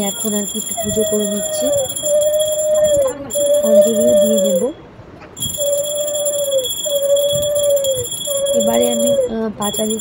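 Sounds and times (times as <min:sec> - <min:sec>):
hand bell ringing: 0:00.0 - 0:04.8, 0:05.4 - 0:10.0.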